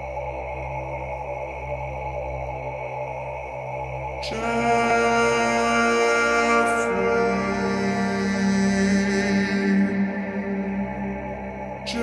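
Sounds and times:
sustained ambient synth music: 0.0s - 12.0s.

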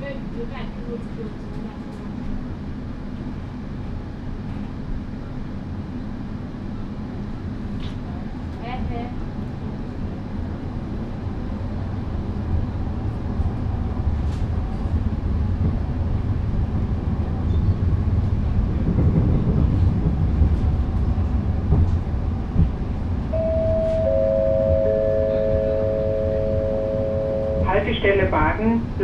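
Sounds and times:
light-rail car low rumble: 0.0s - 29.0s
three-note chime: 23.4s - 27.7s.

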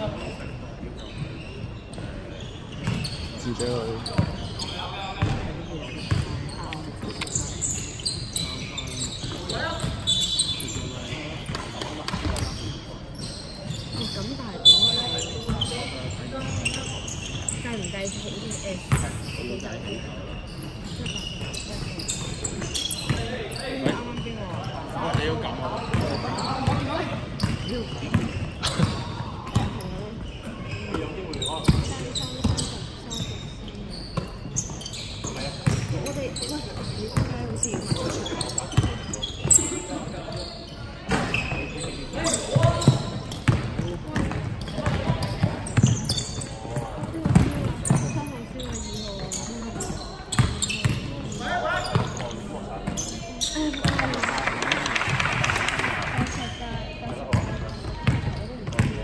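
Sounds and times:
shoes squeaking: 0.0s - 54.4s.

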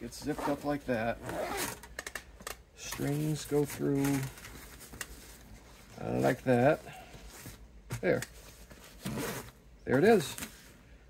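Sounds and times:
zipper pulled shut: 1.2s - 1.8s.

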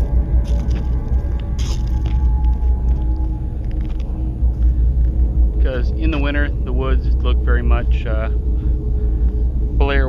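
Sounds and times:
low rumble: 0.0s - 10.0s.

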